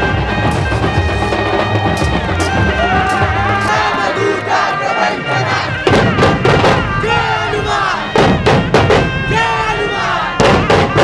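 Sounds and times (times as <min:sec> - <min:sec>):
men shouting chants: 0:02.4 - 0:08.2, 0:09.2 - 0:11.0
large barrel drums struck hard: 0:05.8 - 0:07.2, 0:08.0 - 0:09.4, 0:10.4 - 0:11.0.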